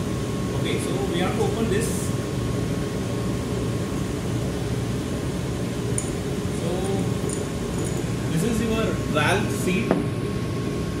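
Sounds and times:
thin constant whine: 0.0 - 11.0
ventilation and machinery hum: 0.0 - 11.0.

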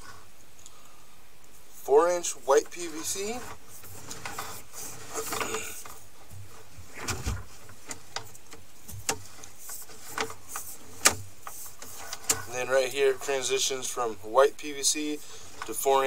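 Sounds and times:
camera cable scraping and knocking: 2.7 - 12.5.

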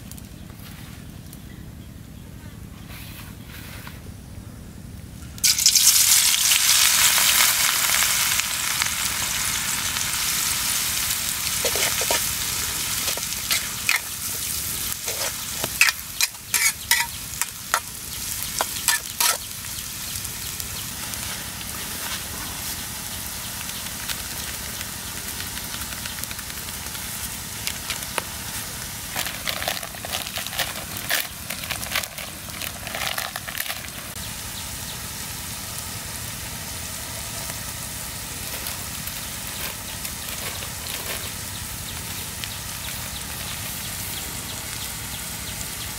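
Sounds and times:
food sizzling in hot oil: 5.4 - 45.9
utensil scraping wok: 8.7 - 19.6.

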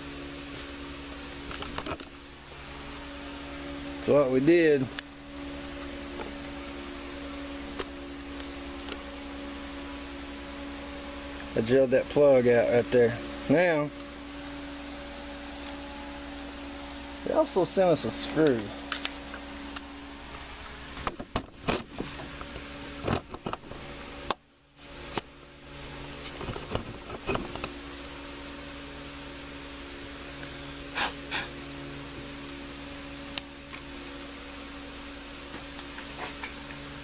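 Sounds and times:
fan humming: 0.0 - 37.0.

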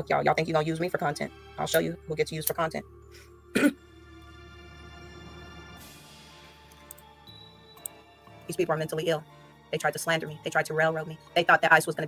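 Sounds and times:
background music: 0.0 - 12.0
woman clearing her throat: 3.5 - 3.8.

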